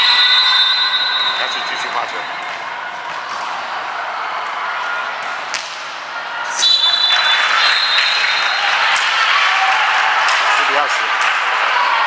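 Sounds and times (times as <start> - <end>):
murmur of voices in gym: 0.0 - 12.0.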